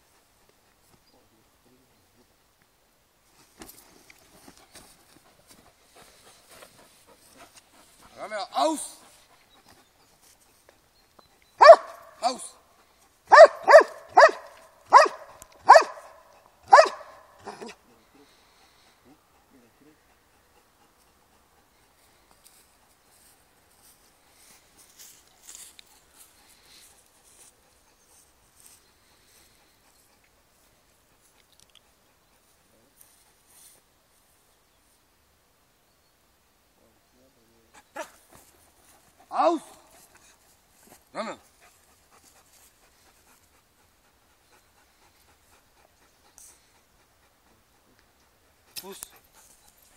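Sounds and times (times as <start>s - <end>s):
dog barking sharply: 11.6s - 12.4s, 13.3s - 17.8s.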